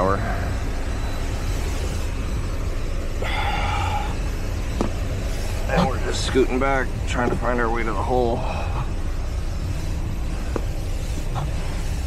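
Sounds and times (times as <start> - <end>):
equipment humming and whirring: 0.0 - 12.0
high-pitched whines: 0.0 - 12.0.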